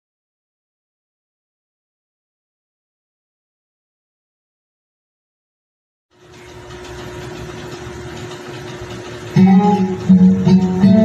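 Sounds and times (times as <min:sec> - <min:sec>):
loud guitar music: 0:09.4 - 0:11.0.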